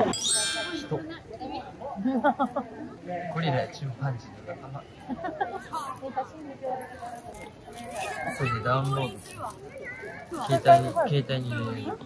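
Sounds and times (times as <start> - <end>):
bright chiming ding: 0.0 - 1.2.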